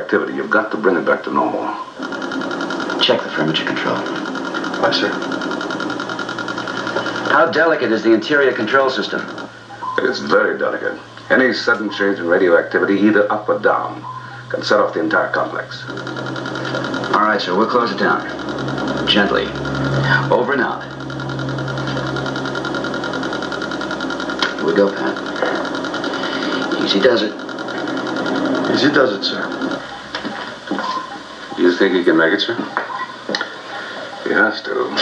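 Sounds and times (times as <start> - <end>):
pulsing machinery hum: 0.4 - 35.0.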